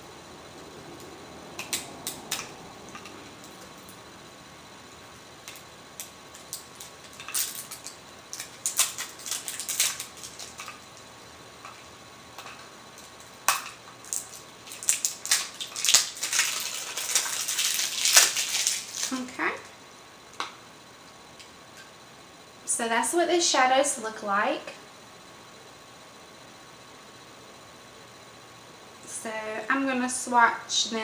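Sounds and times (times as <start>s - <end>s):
plastic packaging crinkling: 5.5s - 11.1s, 13.5s - 19.3s.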